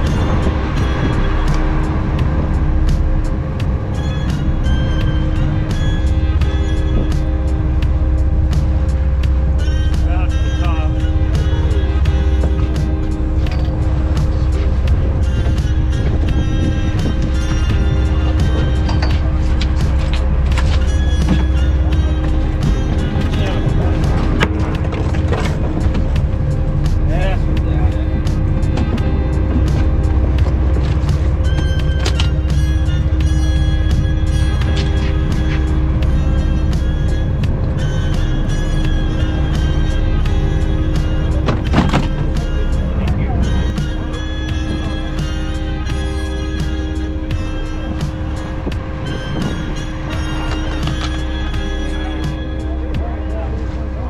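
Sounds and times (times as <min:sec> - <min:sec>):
background music: 0:00.0 - 0:54.0
steady low rumble: 0:00.0 - 0:54.0.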